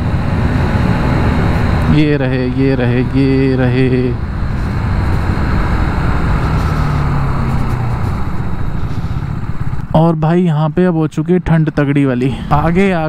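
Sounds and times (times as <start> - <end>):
wind rush on microphone: 0.0 - 3.4, 4.2 - 10.0
motorcycle engine cruising: 0.0 - 13.0.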